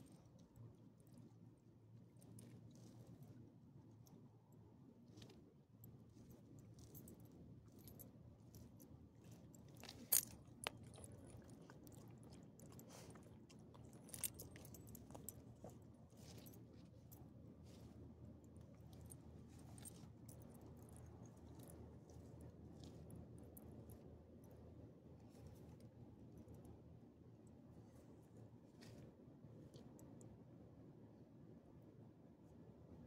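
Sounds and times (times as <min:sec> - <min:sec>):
collar and leash clinking: 0:06.2 - 0:17.9.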